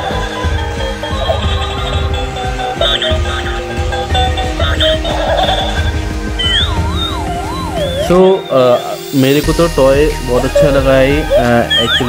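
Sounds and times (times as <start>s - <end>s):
electronic toy music tune: 0.0s - 12.0s
siren-like warble: 0.0s - 12.0s.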